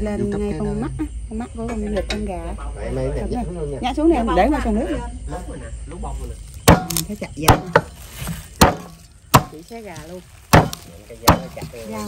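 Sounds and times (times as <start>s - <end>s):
cleaver chopping on wooden board: 6.6s - 12.0s.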